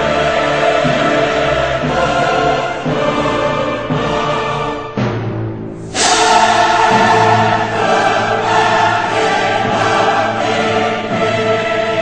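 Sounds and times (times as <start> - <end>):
choir singing held chords: 0.0 - 5.1, 5.8 - 12.0.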